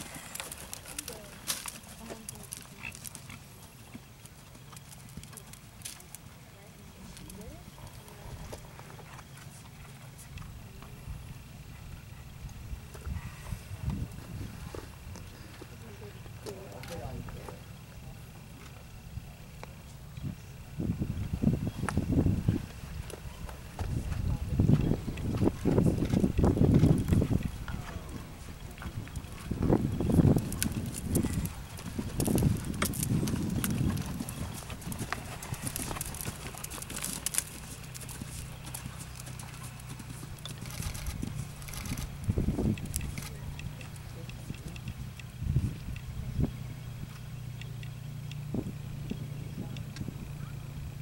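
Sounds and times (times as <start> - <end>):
horse hooves trotting on sand: 0.0 - 51.0.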